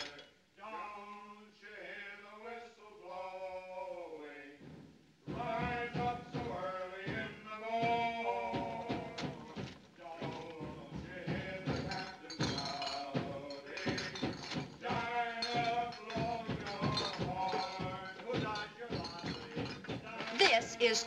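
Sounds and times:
men singing: 0.0s - 4.6s, 5.3s - 21.0s.

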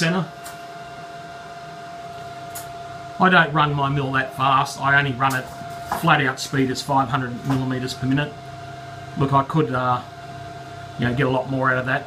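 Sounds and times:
mill drive motor whining: 0.0s - 12.0s.

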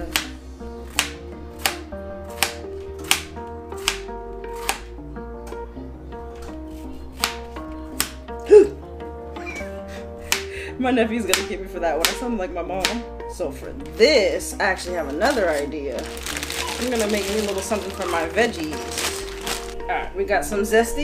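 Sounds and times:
knife chopping on plastic board: 0.0s - 4.9s, 7.2s - 8.2s, 11.3s - 12.2s
background music with bass line: 0.0s - 21.0s.

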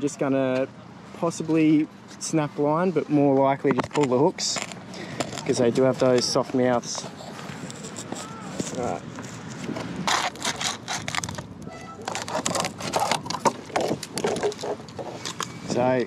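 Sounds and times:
scissors cutting plastic bottle: 7.6s - 15.5s.

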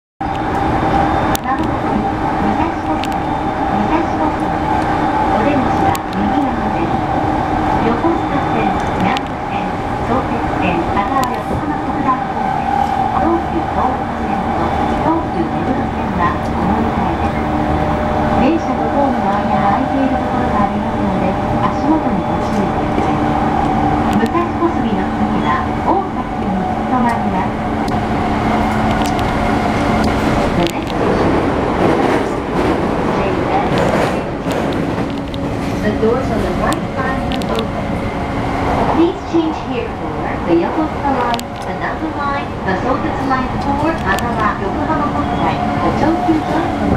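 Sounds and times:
people's voices: 0.4s - 46.9s.

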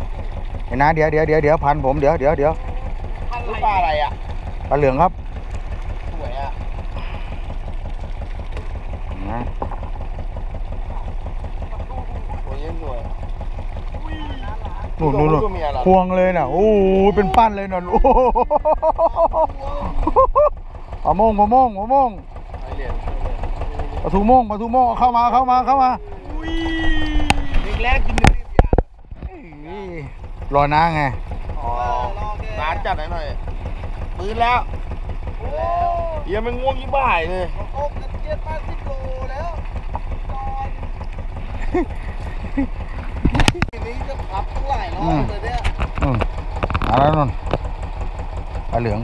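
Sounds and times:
boat engine idling: 0.0s - 49.0s
men's voices: 21.1s - 40.9s, 43.7s - 47.5s.

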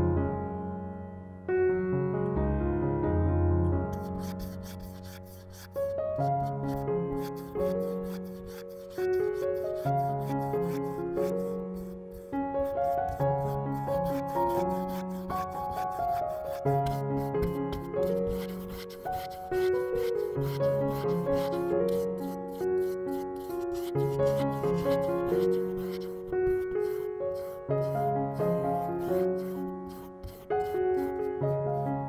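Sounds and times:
keyboard background music: 0.0s - 32.0s
brush stroking paint on canvas: 3.9s - 32.0s.

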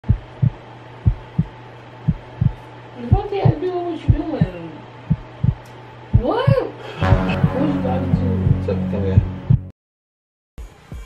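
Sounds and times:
heartbeat thumps: 0.0s - 9.7s.

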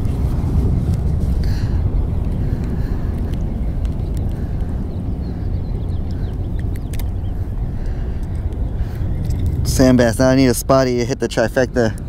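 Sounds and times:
wind buffeting microphone: 0.0s - 12.0s
faint clicks: 2.2s - 4.8s, 6.0s - 7.2s.

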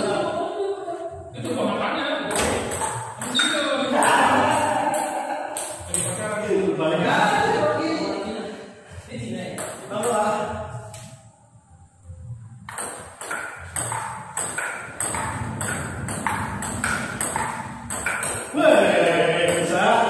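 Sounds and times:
table tennis ball clicking: 12.7s - 18.5s.

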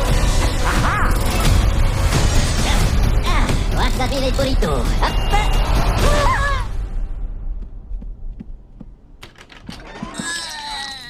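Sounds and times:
film soundtrack music: 0.0s - 9.9s.

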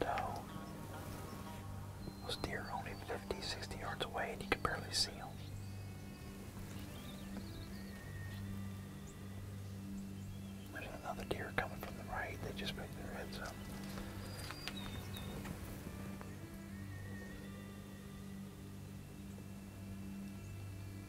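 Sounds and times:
person whispering: 0.0s - 0.5s, 2.2s - 5.4s, 10.8s - 13.6s
faint background music: 0.0s - 21.0s.

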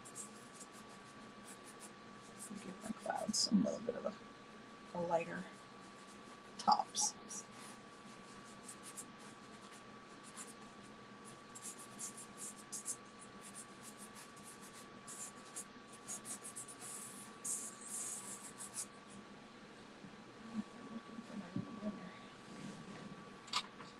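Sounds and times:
pastel sticks scratching paper: 0.0s - 3.3s, 5.8s - 10.6s, 11.3s - 18.9s.

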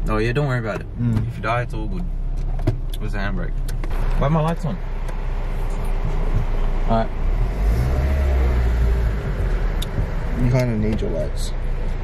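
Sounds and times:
car engine drone from inside: 0.0s - 12.0s.

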